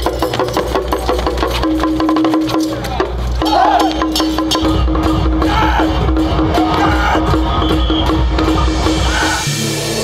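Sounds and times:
drum and wood-block roll: 0:00.0 - 0:09.4.

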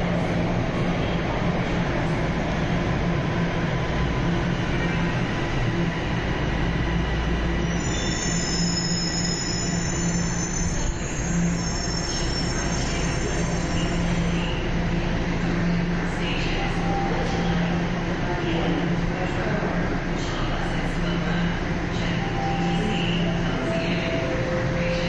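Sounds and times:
subway train rumble and hum: 0:00.0 - 0:25.0
high-pitched train squeal: 0:07.6 - 0:14.6.

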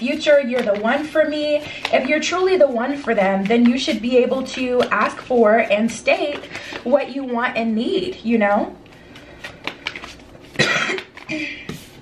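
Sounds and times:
cards rustling: 0:00.0 - 0:07.4, 0:08.9 - 0:12.0
woman coughing: 0:10.6 - 0:11.8.

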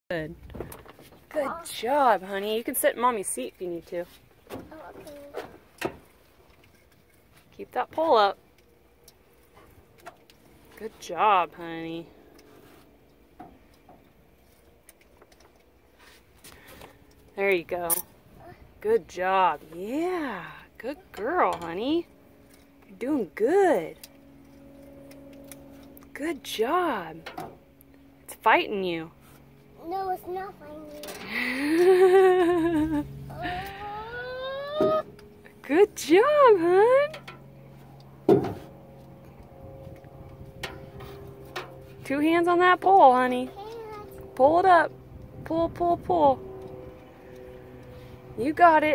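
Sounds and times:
low steady hum: 0:00.1 - 0:48.9.

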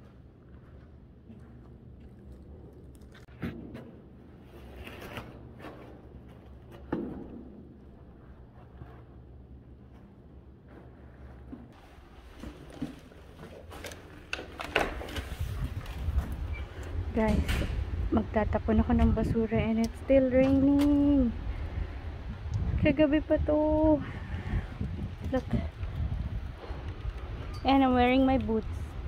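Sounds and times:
low steady hum: 0:00.0 - 0:29.0
wind rumble: 0:14.9 - 0:29.0.

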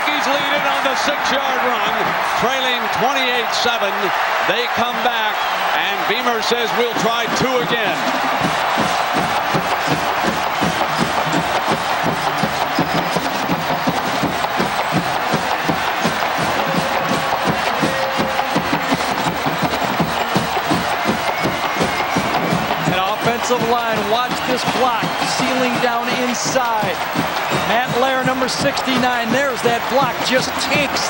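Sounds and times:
stadium crowd cheering: 0:00.0 - 0:31.0.

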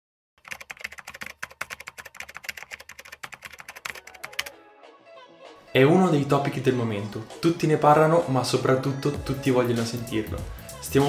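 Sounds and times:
keyboard key clicks: 0:00.5 - 0:04.5.

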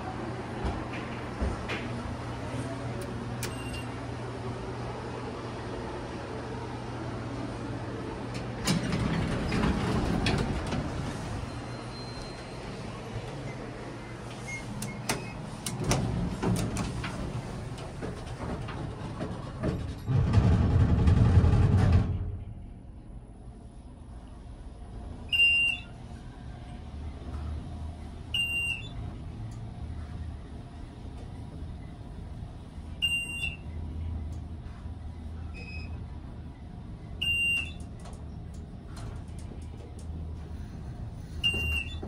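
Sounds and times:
elevator doors rumbling open: 0:00.0 - 0:42.0
elevator door clunk: 0:00.5 - 0:04.2, 0:08.2 - 0:22.9, 0:37.0 - 0:40.7, 0:41.4 - 0:42.0
elevator beeps: 0:03.4 - 0:04.0, 0:08.6 - 0:13.7, 0:14.4 - 0:16.0, 0:25.3 - 0:26.0, 0:28.3 - 0:29.1, 0:32.9 - 0:33.8, 0:35.5 - 0:36.5, 0:37.1 - 0:38.0, 0:41.3 - 0:42.0.

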